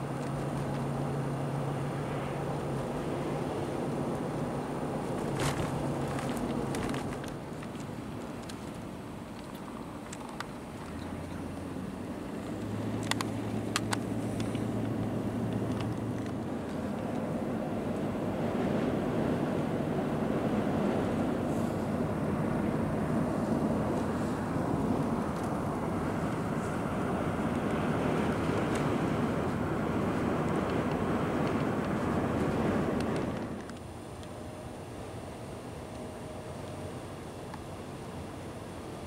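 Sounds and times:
road and wind noise in car: 0.0 - 39.0.

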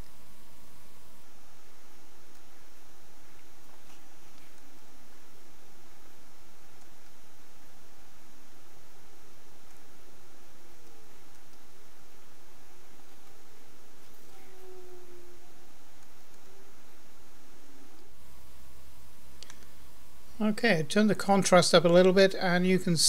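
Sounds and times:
background hiss: 0.0 - 23.0
faint wavering tones: 14.0 - 19.9.

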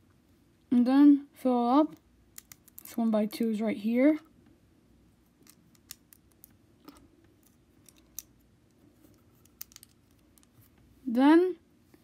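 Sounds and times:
plastic bricks clicking together: 2.4 - 2.9, 7.8 - 8.3, 9.4 - 10.5.

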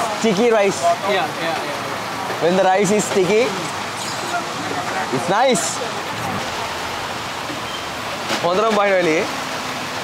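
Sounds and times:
heavy rain hissing: 0.1 - 10.0.

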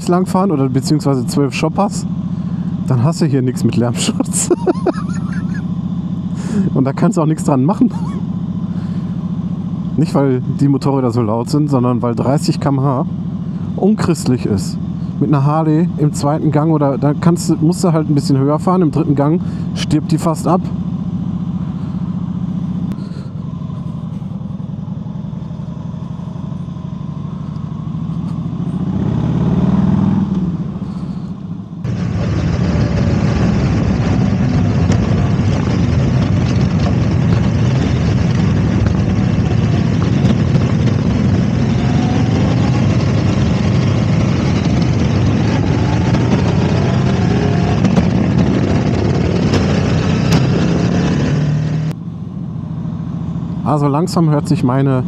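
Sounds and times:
motorcycle engine: 0.0 - 55.0
wind rush: 31.9 - 51.9.

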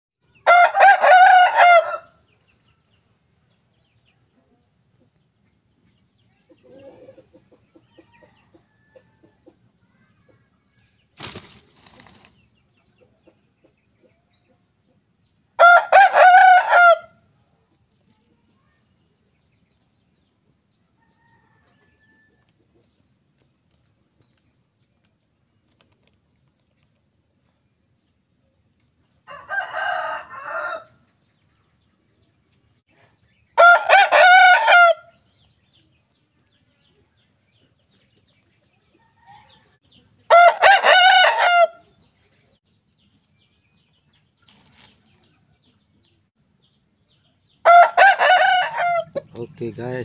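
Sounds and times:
rooster crowing: 0.4 - 2.2, 15.6 - 17.2, 29.2 - 31.0, 33.6 - 35.2, 39.0 - 41.8, 47.6 - 49.2
faint low chicken clucks: 3.8 - 11.0, 12.7 - 25.2.

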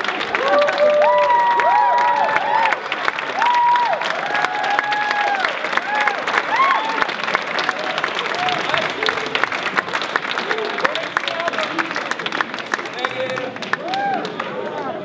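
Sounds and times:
audience applauding: 0.0 - 15.0
whoops and cheering: 0.3 - 7.1, 13.8 - 14.5.

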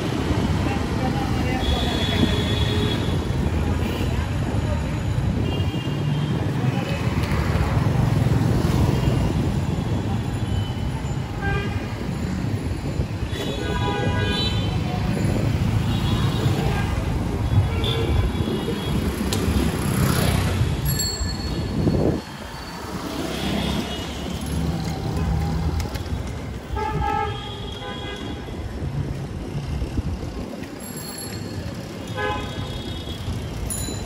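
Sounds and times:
street traffic rumbling: 0.0 - 34.0.

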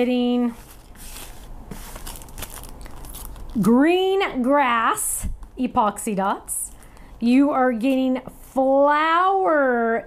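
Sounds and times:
paper and plastic crinkling: 0.4 - 3.7.

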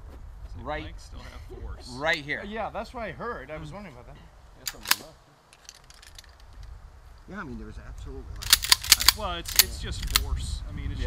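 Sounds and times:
shotgun clicks and metallic rattles: 4.6 - 6.7, 8.4 - 10.3.

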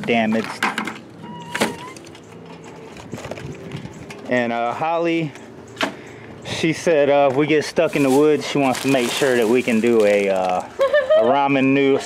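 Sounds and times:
foil pouches rustling: 7.8 - 10.8.

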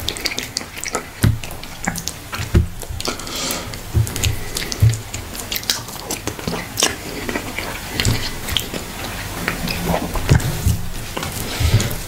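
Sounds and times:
wet chewing and mouth clicks: 0.0 - 12.0
soft low thumps: 2.4 - 3.1, 3.8 - 5.3.

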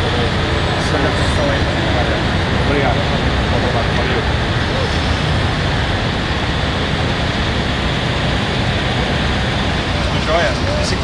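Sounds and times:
car engines rumbling in traffic: 0.0 - 11.0.

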